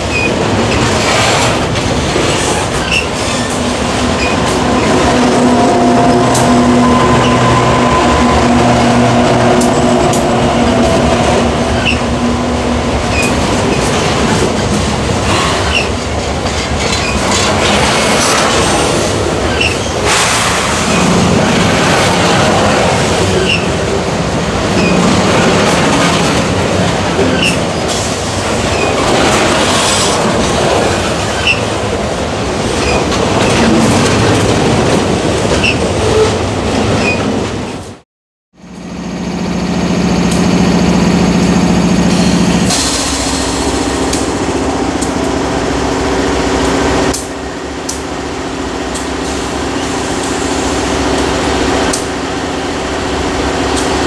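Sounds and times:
diesel locomotive engine hum: 0.0s - 38.0s, 38.6s - 54.0s
train wheels rumbling on rail: 0.0s - 54.0s.

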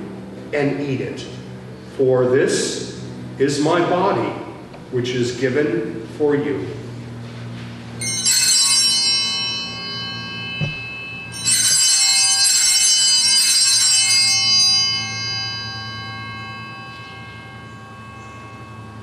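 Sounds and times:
altar bells jangling: 8.0s - 19.0s.

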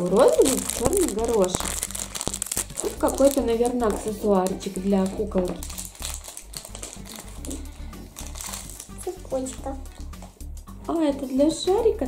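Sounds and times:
foil packet crinkling: 0.0s - 10.3s
music with steady bass beat: 7.0s - 12.0s.

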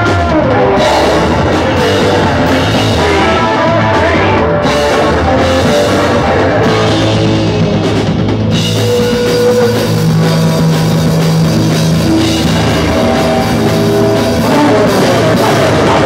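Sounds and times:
drum kit: 0.0s - 16.0s
electric guitar: 0.0s - 16.0s.

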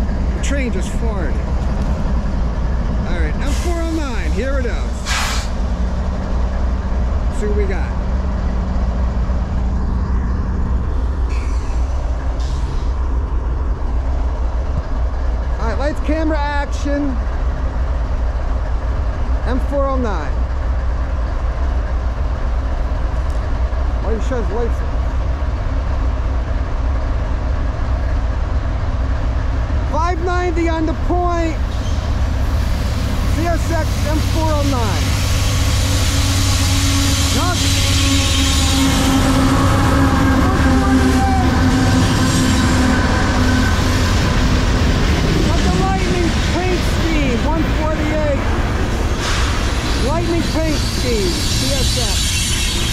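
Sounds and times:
diesel locomotives idling: 0.0s - 52.9s
tank cars rolling past: 30.5s - 52.9s.

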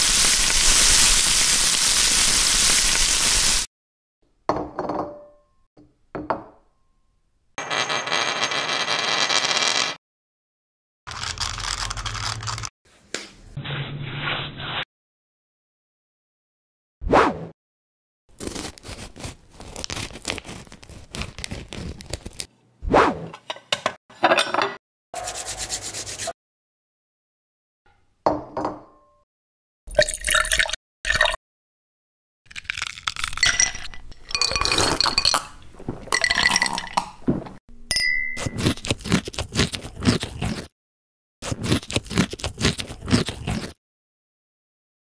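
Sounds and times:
liquid pouring into glass: 29.9s - 31.4s, 32.8s - 37.2s.

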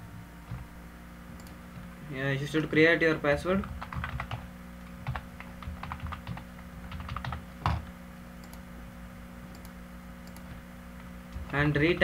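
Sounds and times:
steady low hum: 0.0s - 12.0s
computer keyboard typing: 3.6s - 7.8s, 11.3s - 12.0s.

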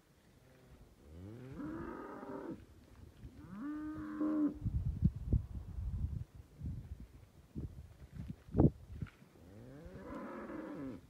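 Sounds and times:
cattle mooing: 9.6s - 11.0s.

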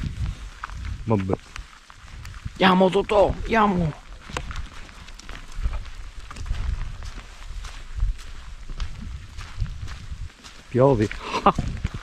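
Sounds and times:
footsteps on wet grass: 0.0s - 12.0s.

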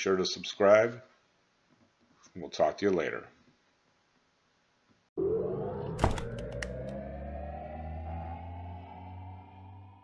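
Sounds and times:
low synth drone: 5.2s - 10.0s
rising synth tone: 5.2s - 10.0s
sharp synth hit: 5.2s - 10.0s.

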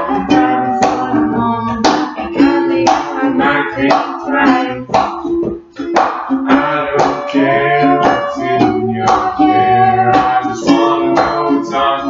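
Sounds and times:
person singing: 0.0s - 12.0s
ukulele strumming: 0.0s - 12.0s.

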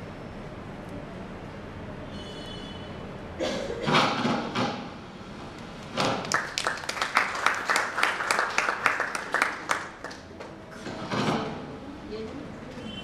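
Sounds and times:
people clapping: 6.1s - 10.6s.

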